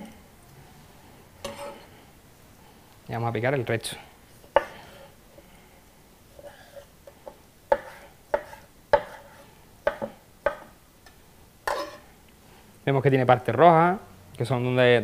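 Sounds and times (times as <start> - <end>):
knife chopping on cutting board: 4.6 - 4.8, 7.7 - 10.7.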